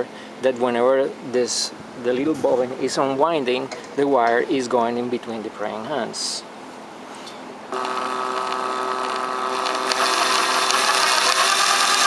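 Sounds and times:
small electric motor whine: 7.7s - 12.0s.

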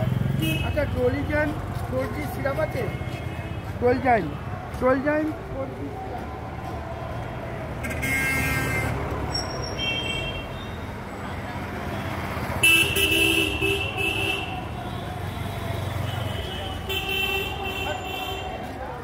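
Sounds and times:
car engines rumbling: 0.0s - 9.9s
car horns honking: 0.3s - 0.9s, 7.8s - 10.8s, 12.6s - 14.7s, 16.0s - 18.5s.

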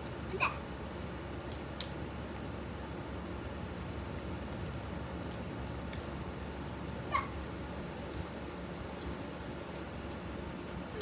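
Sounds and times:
dog yip: 7.1s - 7.4s.

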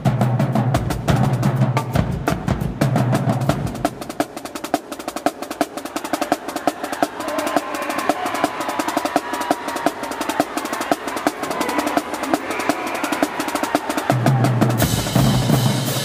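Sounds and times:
snare drums playing fast run: 0.0s - 16.0s.

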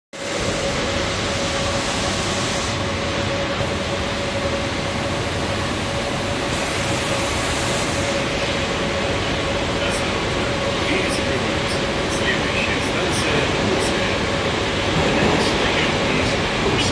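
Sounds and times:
mid-pitched hum: 0.2s - 16.9s
train running rumble: 0.2s - 16.9s.

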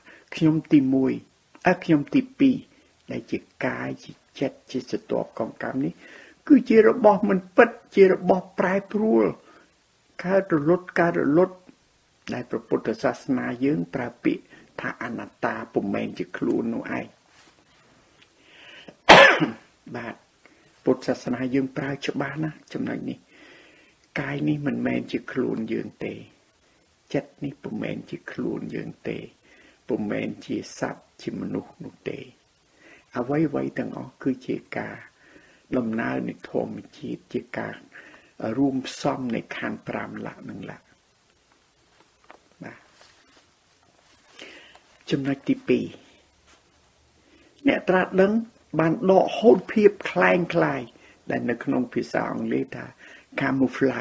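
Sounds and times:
man coughing: 19.1s - 19.7s.

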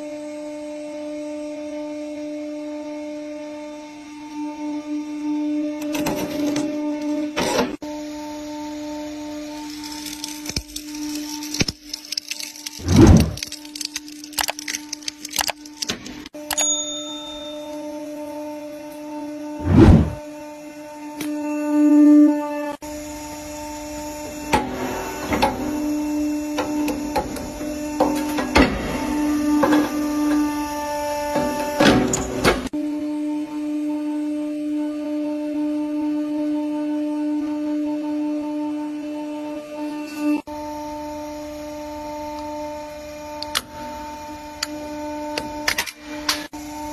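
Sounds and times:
hydraulic press humming: 5.6s - 20.3s, 22.9s - 32.8s
tubes cracking and snapping: 9.6s - 16.4s.

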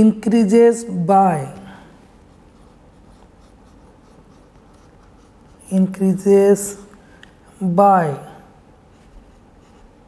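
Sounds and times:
pen scratching on paper: 2.3s - 5.8s, 8.9s - 10.0s.

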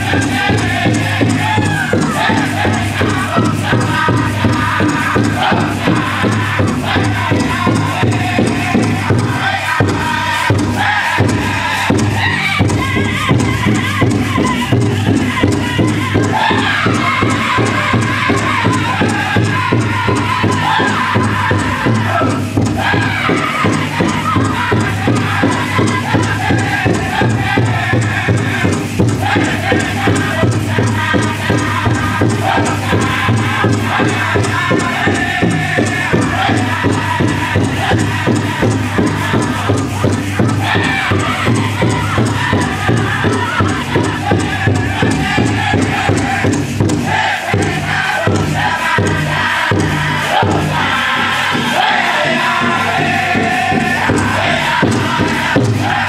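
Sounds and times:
group singing chanted vocables: 0.0s - 56.0s
steady beat on large drum: 0.0s - 56.0s.

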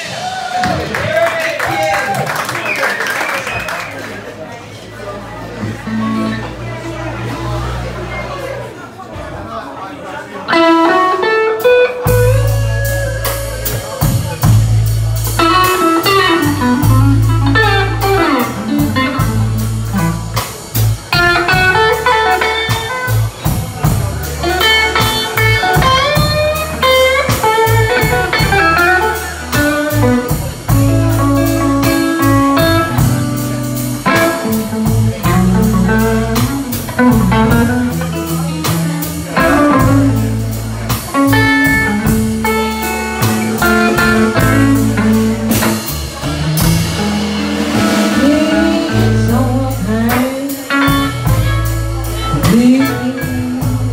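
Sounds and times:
electric blues band playing: 0.0s - 9.0s, 10.4s - 53.9s.

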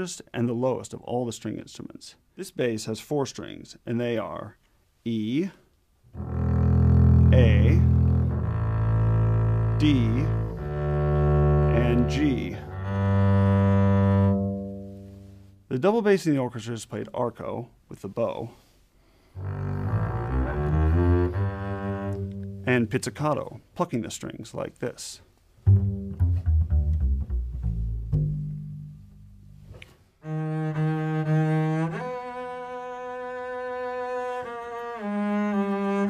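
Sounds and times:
bowed double bass low note: 6.1s - 15.5s, 19.4s - 23.1s, 25.6s - 32.0s.

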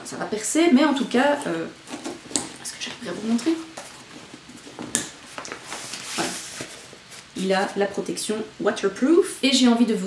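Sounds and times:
nylon fabric rustling: 1.2s - 8.0s.

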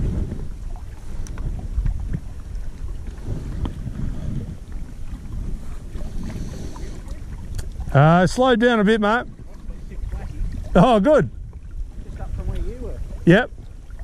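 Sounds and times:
wind rumble on microphone: 0.0s - 14.0s.

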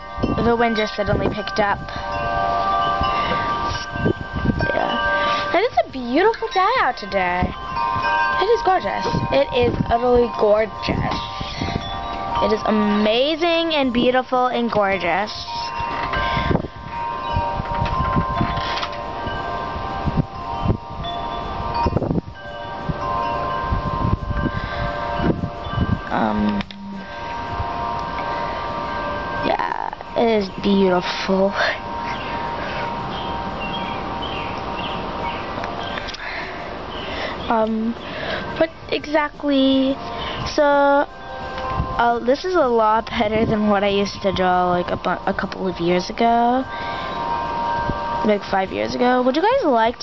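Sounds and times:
wind buffeting microphone: 0.0s - 50.0s
wind chimes ringing: 0.0s - 50.0s.

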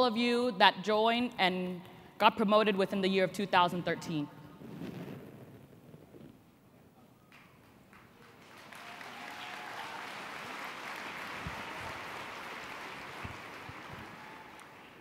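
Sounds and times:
audience applause: 7.9s - 15.0s.

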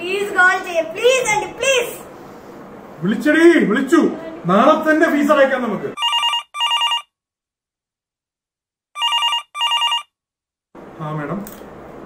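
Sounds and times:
phone double ring: 6.0s - 7.1s, 9.0s - 10.1s.

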